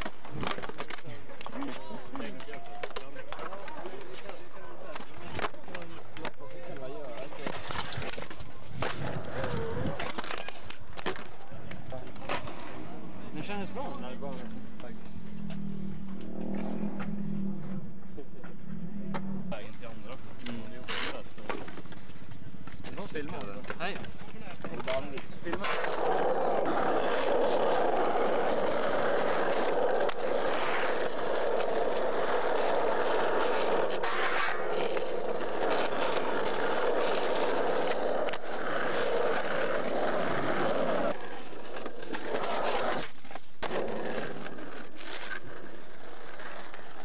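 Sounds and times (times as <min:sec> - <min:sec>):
skateboard wheels rolling on asphalt: 0:00.0 - 0:19.8, 0:24.7 - 0:47.0.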